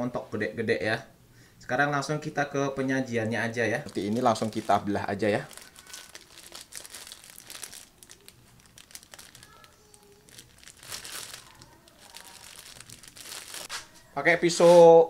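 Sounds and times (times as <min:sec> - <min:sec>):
plastic bag crinkling: 0:03.7 - 0:13.9.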